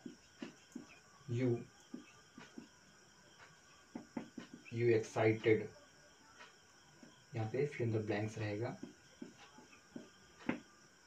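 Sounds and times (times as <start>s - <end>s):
marker pen writing on whiteboard: 0.0s - 5.7s, 8.3s - 10.7s
man speaking: 1.3s - 1.7s, 4.7s - 5.7s, 7.4s - 8.8s.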